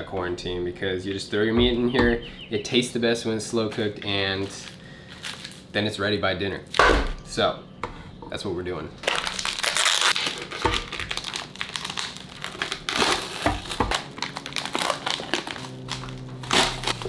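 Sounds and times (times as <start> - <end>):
dull knocks: 1.6 - 2.3
plastic packaging crinkling: 3.8 - 5.7, 9.0 - 17.0.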